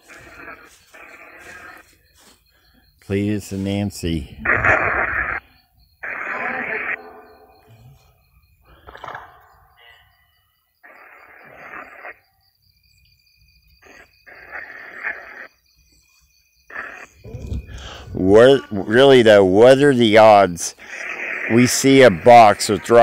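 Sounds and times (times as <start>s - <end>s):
radio static bursts: 3.2s - 5.4s.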